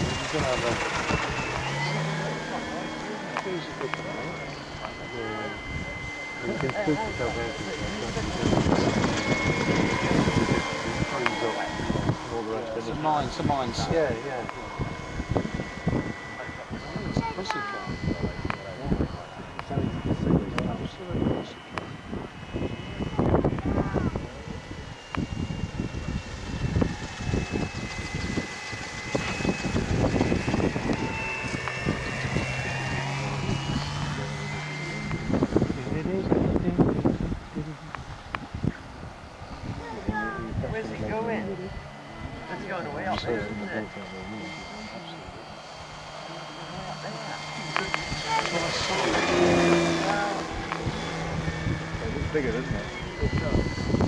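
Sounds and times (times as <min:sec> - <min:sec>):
model aircraft engine whine: 0:00.0 - 0:54.0.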